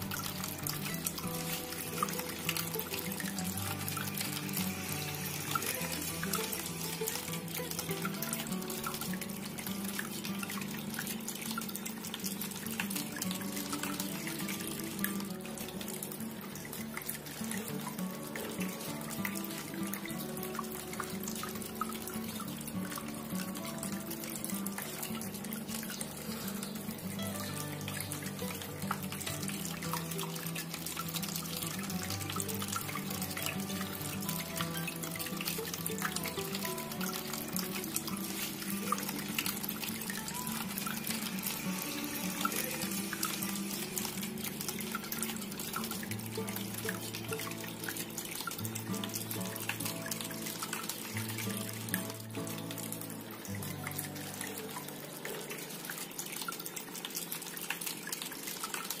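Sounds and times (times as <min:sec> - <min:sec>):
fountain water splashing: 0:00.0 - 0:59.0
soft background music: 0:00.0 - 0:59.0.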